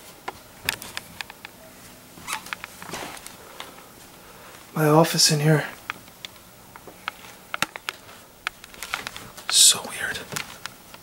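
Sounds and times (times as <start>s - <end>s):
camera handling clicks and rustles: 7.0s - 9.5s.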